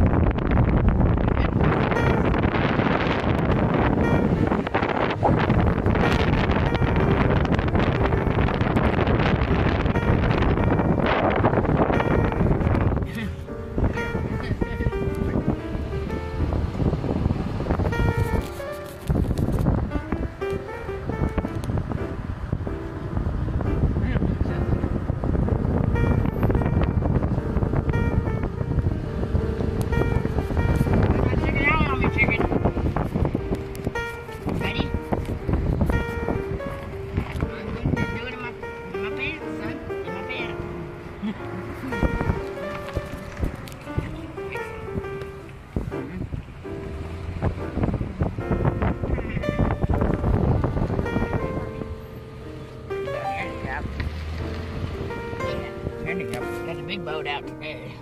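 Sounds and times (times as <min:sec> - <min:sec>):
rumbling road noise: 0:00.0 - 0:58.0
wind blasting microphone: 0:00.0 - 0:58.0
music playing: 0:00.1 - 0:58.0.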